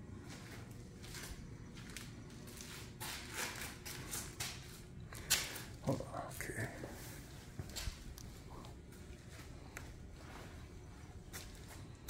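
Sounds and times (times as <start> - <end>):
footsteps on concrete: 0.2 - 12.0.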